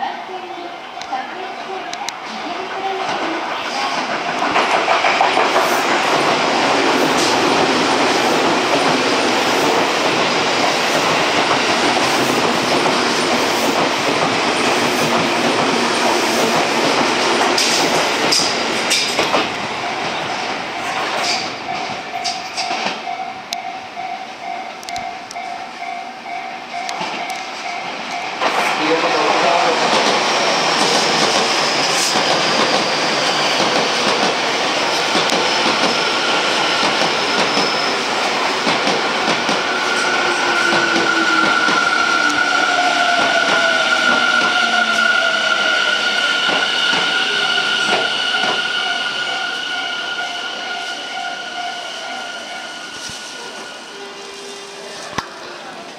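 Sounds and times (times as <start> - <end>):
train wheels rumbling on rails: 2.1 - 55.9
train wheels clattering past: 3.9 - 23.2, 25.4 - 50.8.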